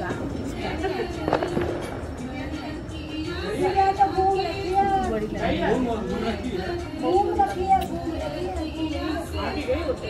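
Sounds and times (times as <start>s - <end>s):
background music with held tone: 0.0s - 10.0s
crowd voices: 0.0s - 10.0s
firecracker pops: 1.2s - 2.2s.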